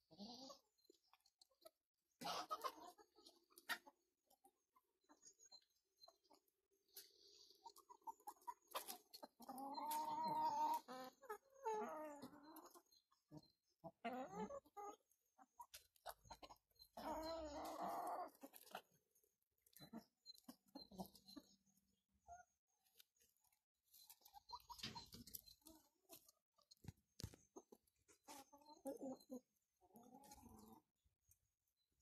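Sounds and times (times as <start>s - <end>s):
chickens clucking and calling: 0.0s - 32.0s.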